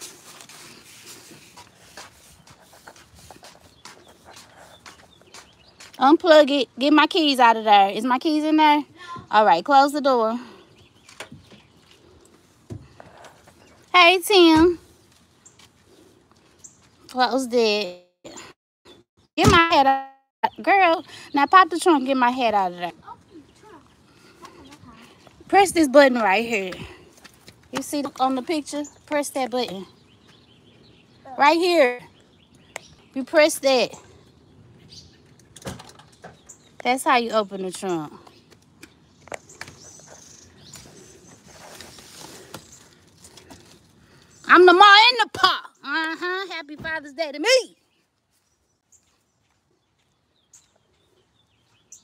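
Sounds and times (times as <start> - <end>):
quiet outdoor background noise: 0.0 - 52.0
small bird chirps: 38.2 - 41.9.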